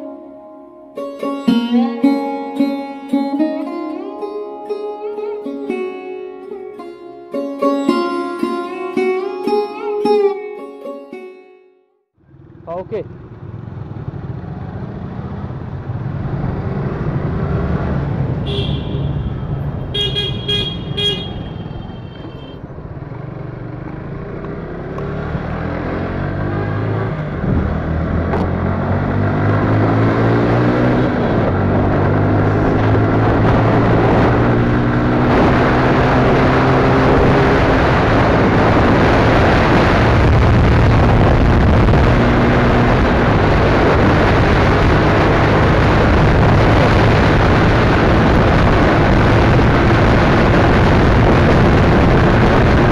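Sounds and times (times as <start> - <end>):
short horn toots: 20.0 - 22.6
wind noise: 27.2 - 52.9.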